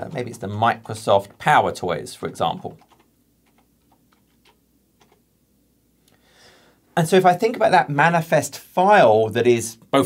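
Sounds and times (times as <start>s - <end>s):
computer keyboard clicks: 2.8s - 5.2s.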